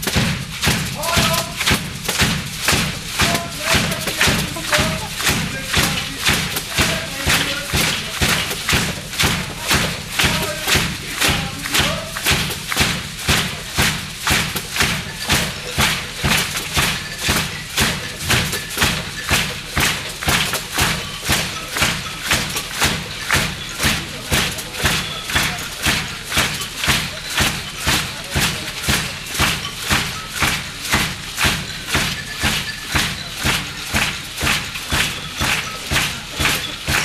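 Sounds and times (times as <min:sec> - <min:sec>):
steady drumming on drum kit: 0:00.0 - 0:37.0.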